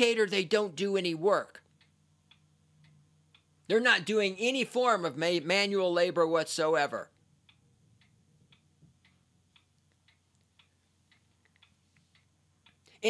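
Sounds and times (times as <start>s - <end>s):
faint ticks: 7.2s - 13.0s.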